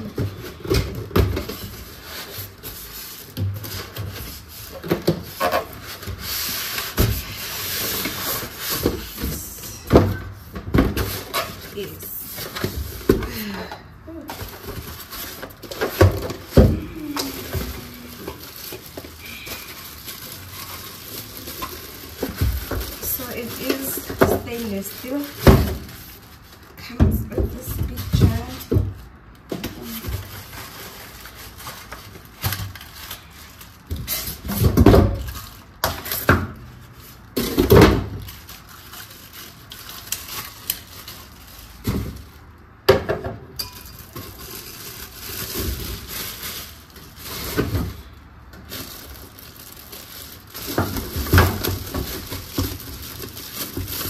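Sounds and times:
plastic wrapping rustling: 0.0 - 54.0.

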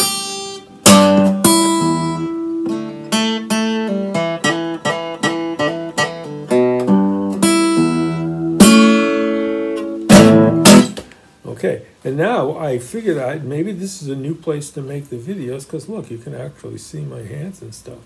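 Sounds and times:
acoustic guitar blues lick: 0.0 - 11.2.

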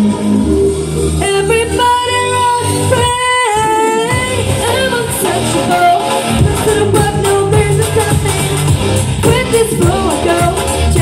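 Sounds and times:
pop song singing over dance beat: 1.1 - 11.0.

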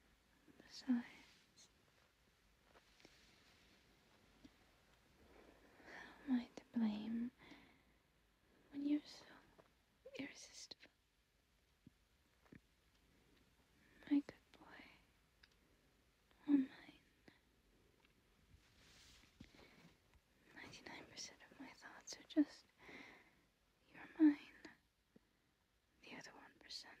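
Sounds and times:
woman whispering: 0.5 - 1.8, 5.8 - 7.6, 8.7 - 11.0, 13.8 - 15.1, 16.3 - 17.4, 20.4 - 22.8, 23.8 - 24.9, 26.0 - 27.0
faint breath: 7.4 - 8.0, 22.8 - 23.5.

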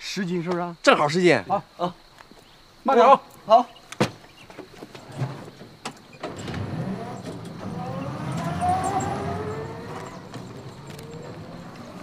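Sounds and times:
electric motor humming and whining: 6.4 - 12.0.

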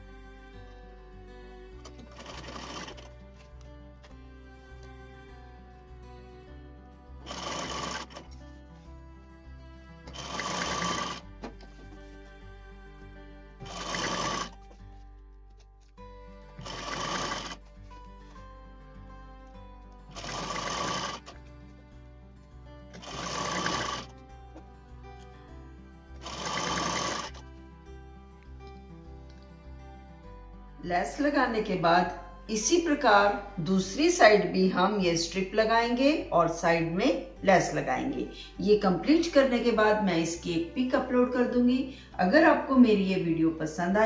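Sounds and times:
background music: 0.0 - 44.0
sewing machine stitching: 1.9 - 3.1, 10.1 - 11.2, 13.6 - 14.6, 16.6 - 17.6, 23.0 - 24.1, 26.2 - 27.4.

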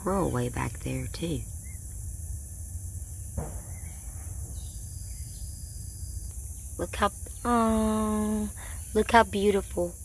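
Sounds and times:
faint bird chirps: 0.0 - 2.1, 2.9 - 9.7
high-pitched insect drone: 0.0 - 10.0
brief knock: 3.4 - 3.7.

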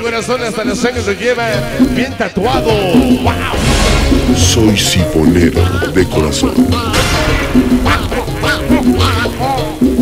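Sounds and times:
latin dance music: 0.0 - 10.0
duck quacks in music: 5.5 - 10.0.

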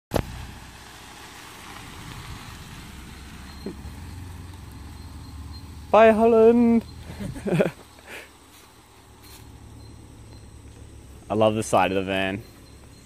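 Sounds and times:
van engine rumbling: 0.1 - 13.0.

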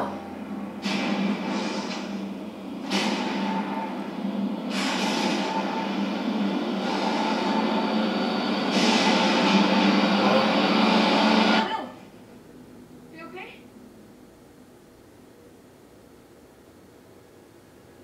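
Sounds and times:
loud rumbling drone: 0.0 - 11.7.

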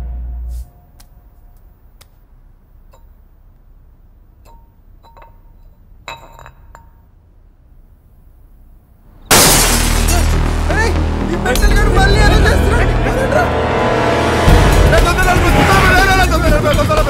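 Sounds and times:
glass bottle clinking on tiles: 4.4 - 7.1
glass breaking: 9.3 - 10.8.

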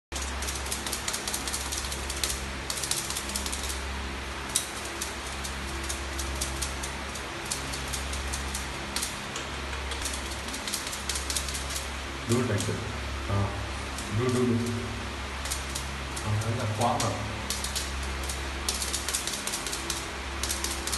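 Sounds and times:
steady low hum: 0.1 - 20.9
puppy claws clicking on concrete: 0.2 - 3.8, 4.5 - 12.8, 15.4 - 20.9.

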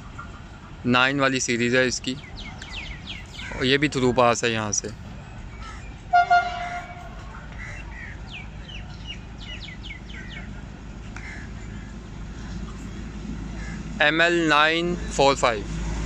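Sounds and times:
birds chirping: 0.0 - 15.6
low engine rumble: 0.0 - 16.0
rail crane horn toot: 6.1 - 7.4.

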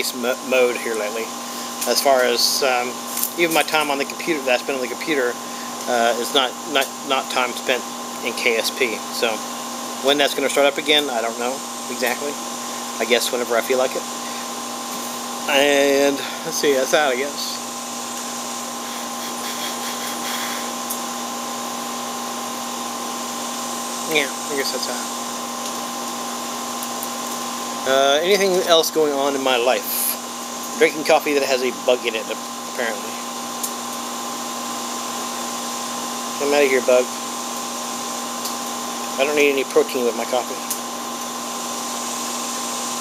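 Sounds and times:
machine hum with hiss: 0.0 - 43.0
machine drone: 11.3 - 25.8.

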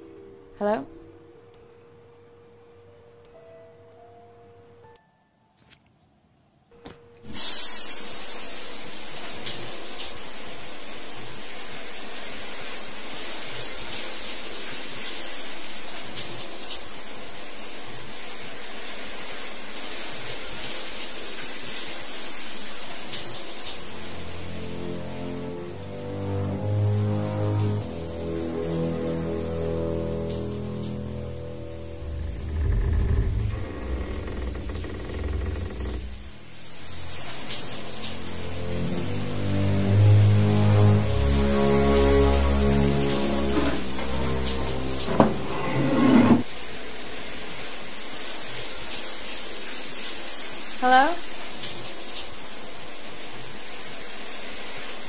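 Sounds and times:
steady hiss: 7.3 - 25.0
tense low sustained score: 24.0 - 36.2, 37.8 - 45.7.

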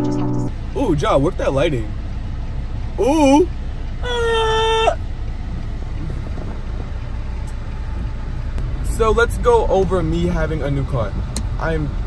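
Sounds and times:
car cabin low rumble: 0.0 - 12.0.

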